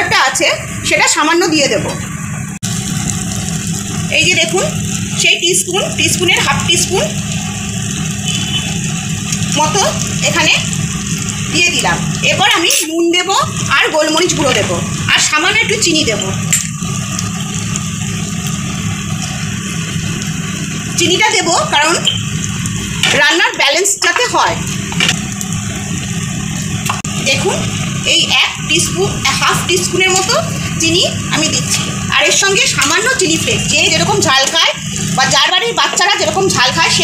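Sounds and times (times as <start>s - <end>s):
food sizzling in a wok: 0.0s - 37.0s.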